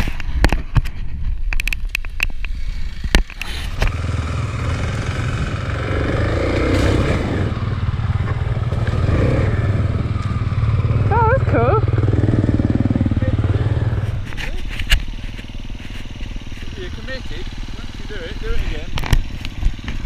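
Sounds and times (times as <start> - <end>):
dirt bike engine running: 0.0 - 20.0.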